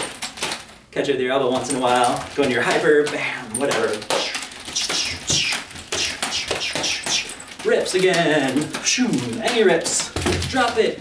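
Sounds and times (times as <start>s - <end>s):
nunchuck taps and chain rattles: 0.0s - 0.8s, 1.5s - 11.0s
nunchucks whooshing through air: 4.1s - 7.4s.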